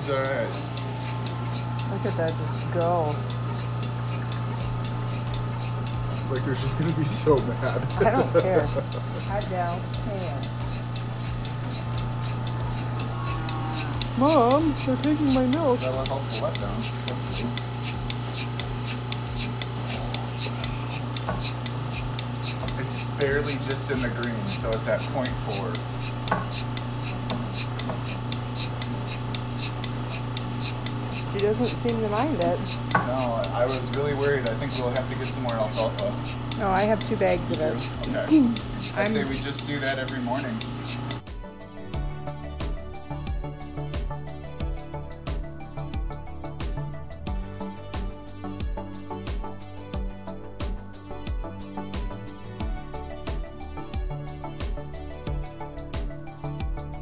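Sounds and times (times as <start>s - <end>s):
pulsator hissing ticks: 0.0s - 41.3s
vacuum pump humming: 0.0s - 50.1s.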